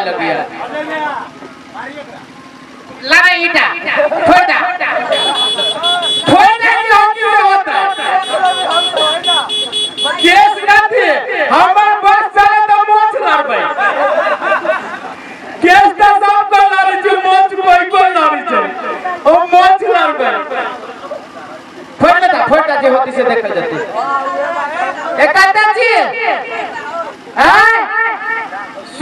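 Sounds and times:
man talking over loudspeakers: 3.0 - 13.7, 15.6 - 20.6, 22.0 - 23.9, 25.1 - 26.7.

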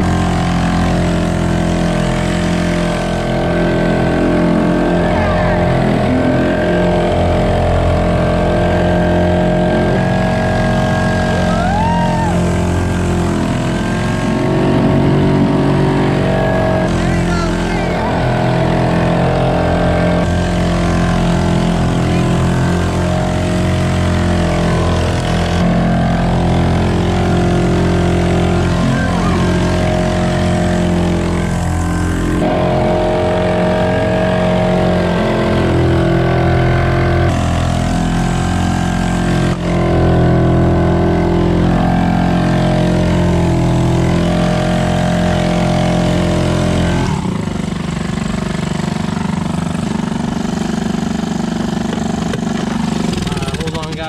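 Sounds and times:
boat motor running: 0.0 - 54.0
other boat motors: 0.0 - 54.0.

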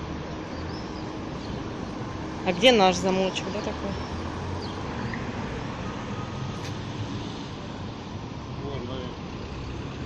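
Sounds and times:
road traffic hum: 0.0 - 10.0.

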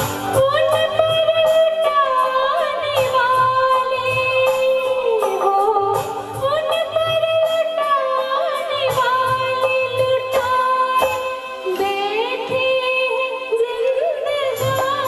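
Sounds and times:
steady drum beat: 0.0 - 13.0
keyboard: 0.0 - 15.0
woman singing: 0.0 - 15.0.

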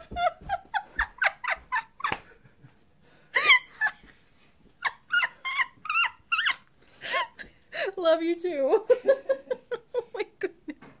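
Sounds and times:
woman's squeaky laughter: 3.4 - 4.0, 4.8 - 7.3.

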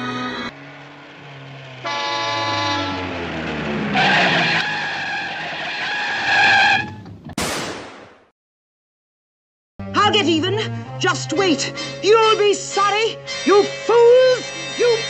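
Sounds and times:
car horn blaring: 1.8 - 3.3.

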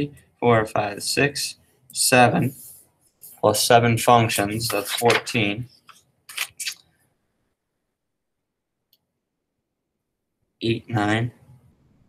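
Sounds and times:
paper sheet scuffing: 4.4 - 6.8.

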